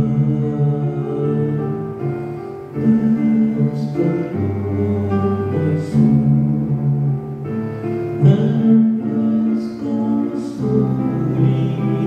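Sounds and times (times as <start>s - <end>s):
slow sung chant with instruments: 0.0s - 12.0s.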